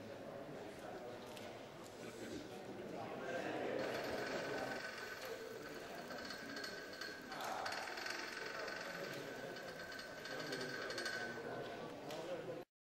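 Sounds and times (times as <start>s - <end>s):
crowd chatter: 0.0s - 12.7s
small electric motors whining: 3.8s - 11.4s.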